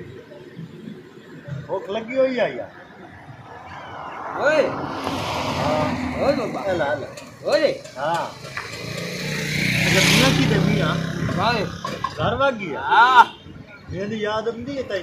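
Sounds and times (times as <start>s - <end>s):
men talking: 1.5s - 8.5s, 9.8s - 15.0s
vehicle driving past on dirt road: 3.6s - 10.7s.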